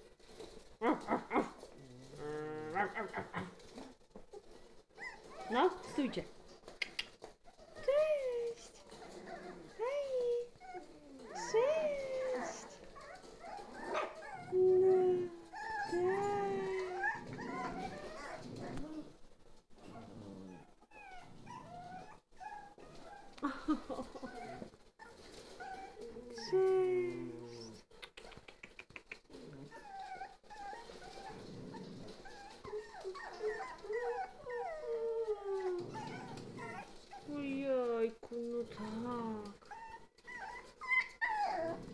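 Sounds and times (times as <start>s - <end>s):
puppies whining and yelping: 2.6s - 6.1s, 8.6s - 9.8s, 10.4s - 26.6s, 29.2s - 37.4s, 39.5s - 41.9s.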